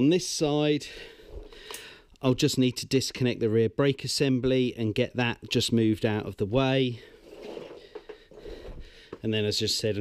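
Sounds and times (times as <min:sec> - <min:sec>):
faint breathing: 0:00.8 - 0:02.2, 0:07.0 - 0:09.2.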